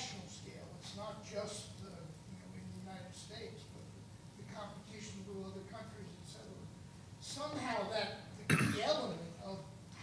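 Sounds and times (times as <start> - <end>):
person coughing: 8.5 - 8.9.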